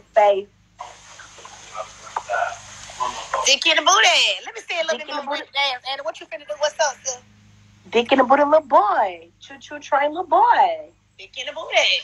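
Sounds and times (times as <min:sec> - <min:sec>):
faint muffled voice: 0:00.8 - 0:03.5
steady hiss: 0:00.8 - 0:04.3.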